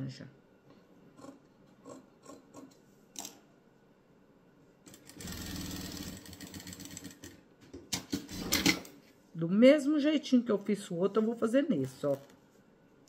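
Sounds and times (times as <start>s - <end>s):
sewing machine stitching: 4.9s - 7.3s.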